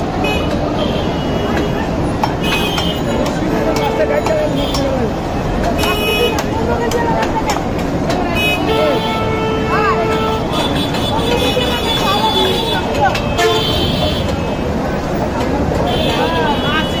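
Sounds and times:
traffic: 0.0s - 17.0s
voices: 0.0s - 17.0s
vehicle horn: 8.4s - 14.6s.

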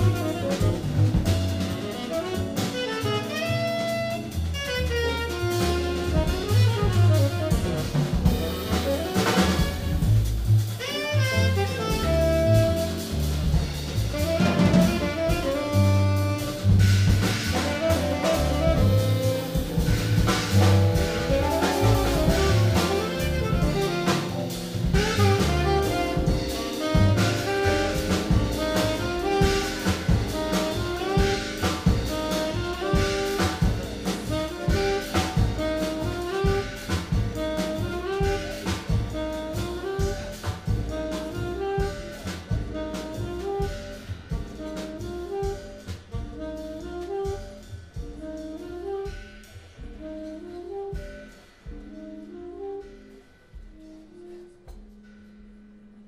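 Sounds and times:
saxophone melody: 0.0s - 13.4s, 14.0s - 55.0s
drum kit cymbal strokes: 0.0s - 52.0s
upright double bass: 0.0s - 53.0s.

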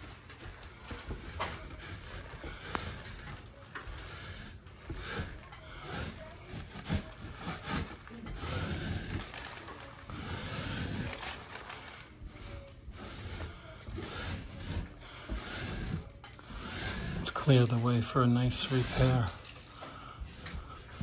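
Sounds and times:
drywall knife scraping ceiling: 0.0s - 21.0s.

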